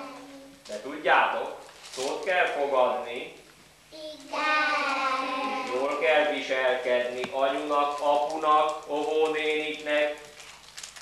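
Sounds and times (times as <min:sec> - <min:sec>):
children calling in unison: 0:04.0 - 0:06.0.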